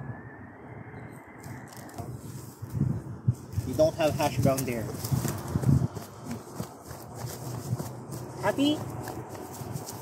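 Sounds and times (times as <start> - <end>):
footsteps on dry grass: 2.1 - 10.0.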